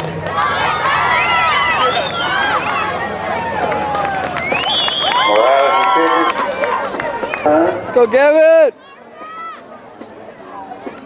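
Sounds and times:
faint overlapping chatter: 0.0 - 11.0.

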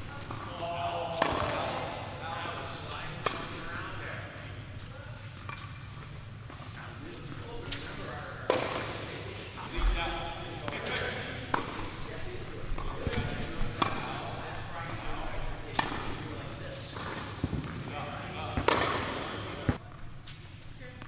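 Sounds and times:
rackets hitting tennis ball: 0.2 - 2.0, 3.1 - 3.7, 7.7 - 9.1, 10.6 - 15.0, 15.6 - 20.4
ball bouncing on hard court: 17.0 - 17.9, 18.5 - 19.8.

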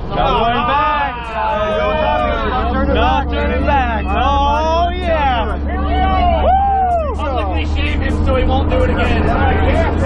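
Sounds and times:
excited voices: 0.0 - 10.0
plane engine and propeller drone: 0.0 - 10.0.

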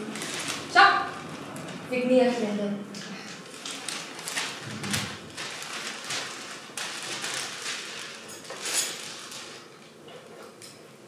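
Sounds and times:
newspaper pages rustling: 0.0 - 1.8, 3.4 - 9.8.

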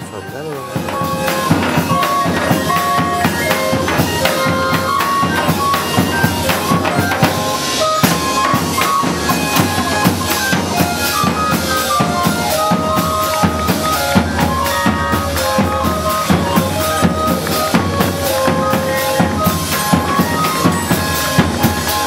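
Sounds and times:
barrel organ melody: 0.0 - 22.0
bass drums beating: 0.0 - 22.0
cymbals: 0.0 - 22.0.

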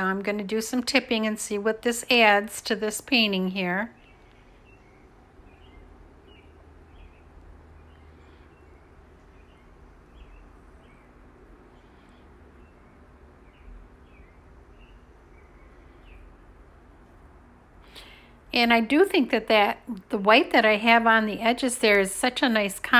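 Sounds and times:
low steady hum: 0.0 - 22.9.

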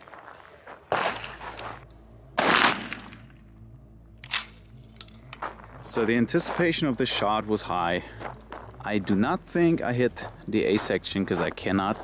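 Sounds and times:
shotgun shot with echo: 2.4 - 3.3.

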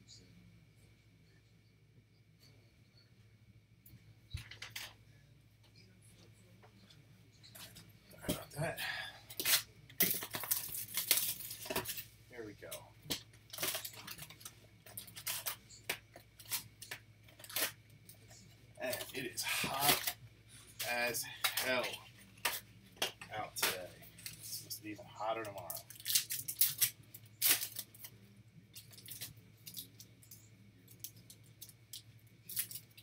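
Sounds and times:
cardboard and foil tearing: 8.8 - 12.0, 13.5 - 17.8, 18.8 - 20.2, 25.2 - 28.2
person speaking: 18.4 - 25.9.

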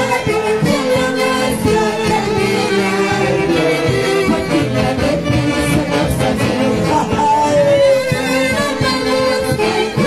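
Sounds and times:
dance orchestra with saxophones: 0.0 - 10.0.

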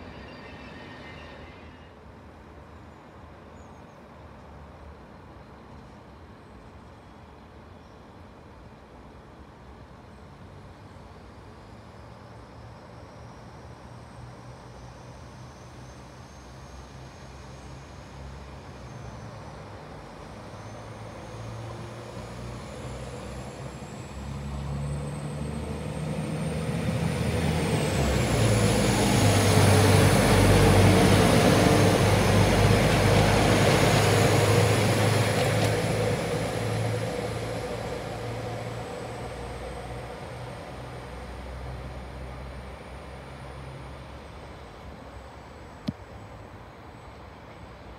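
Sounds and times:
faint high whine: 0.0 - 3.8
diesel train passing: 0.0 - 47.9.

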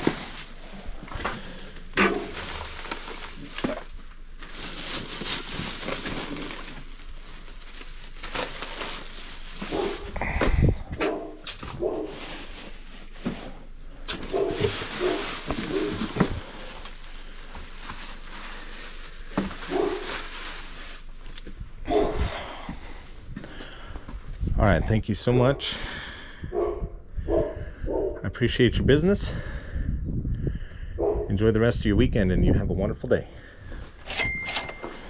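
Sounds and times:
plastic bags crinkling: 0.0 - 22.2
dog barking: 2.0 - 2.4, 11.0 - 12.2, 14.3 - 16.0, 19.7 - 20.0, 21.9 - 22.2, 26.5 - 28.2, 31.0 - 31.3.

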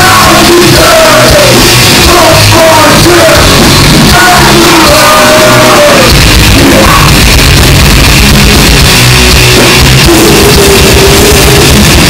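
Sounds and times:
death metal band playing live: 0.0 - 12.0.

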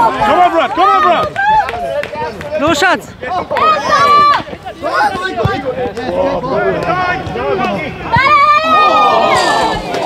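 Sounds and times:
footballers shouting: 0.0 - 10.0.

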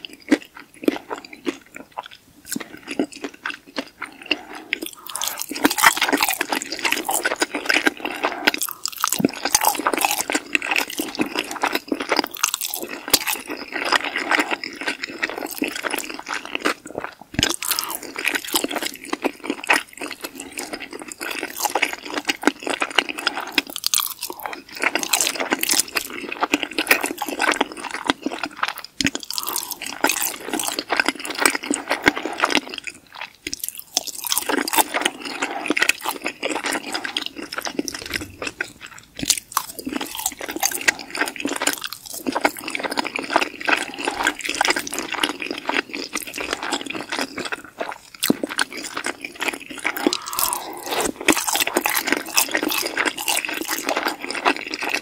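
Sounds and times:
wet chewing mouth sounds: 0.0 - 55.0
mouth clicks and smacks: 26.9 - 55.0.

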